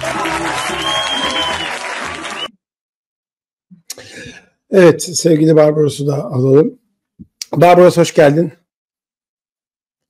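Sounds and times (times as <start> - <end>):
audience applauding: 0.0 - 2.5.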